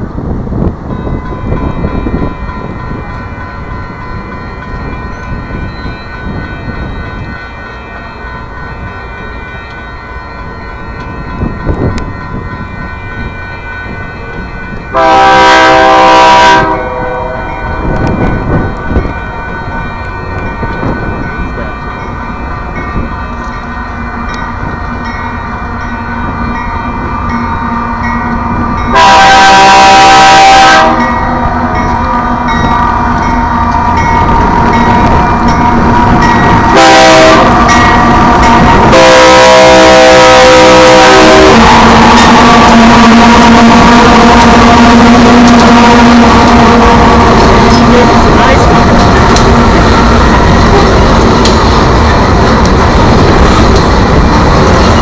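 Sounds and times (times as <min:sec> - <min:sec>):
train rumble: 0:00.0 - 0:55.0
crossing bell ringing: 0:00.5 - 0:55.0
diesel locomotive horn blasts: 0:14.9 - 0:18.6, 0:28.9 - 0:33.9, 0:35.9 - 0:49.0.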